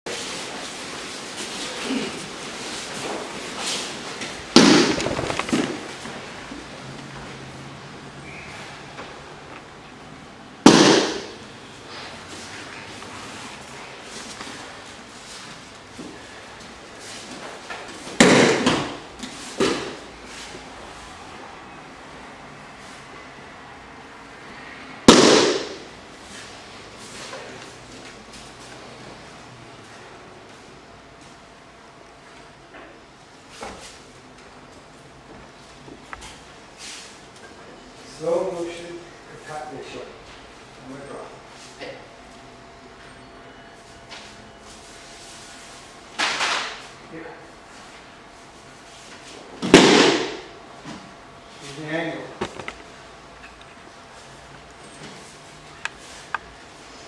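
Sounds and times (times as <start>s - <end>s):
bodies slapping foam mat: 2.9s - 6.2s, 10.6s - 11.4s.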